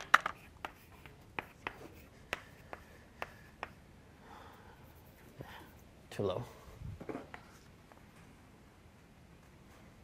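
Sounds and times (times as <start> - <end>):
chalk strokes on blackboard: 0.3 - 3.8, 4.8 - 5.9.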